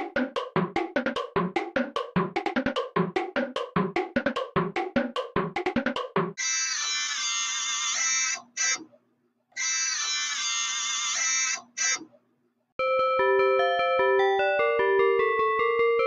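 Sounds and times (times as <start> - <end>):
keyboard melody: 12.8 - 16.0.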